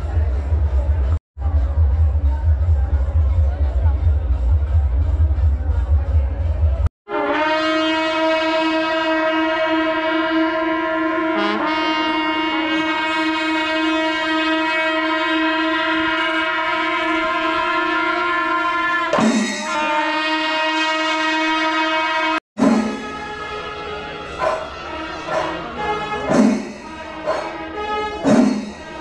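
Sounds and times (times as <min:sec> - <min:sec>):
bass-heavy music: 0:00.0 - 0:06.9
brass horns long steady note: 0:07.1 - 0:29.0.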